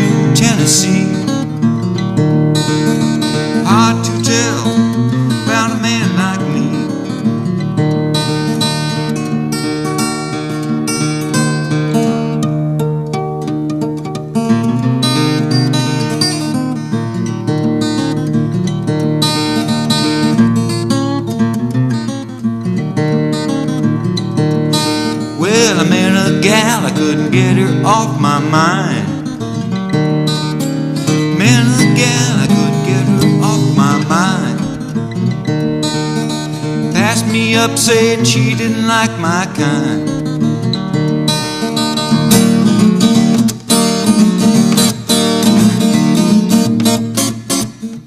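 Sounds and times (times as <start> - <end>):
fingerpicked acoustic guitar: 0.0 - 48.0.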